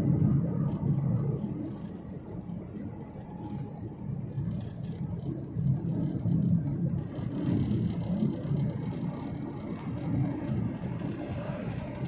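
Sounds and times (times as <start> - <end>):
vehicle engine and tyre rumble: 0.0 - 12.0.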